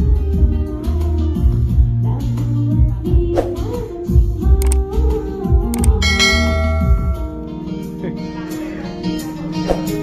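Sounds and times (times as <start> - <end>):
bell-like chord ringing: 6.0 - 7.6.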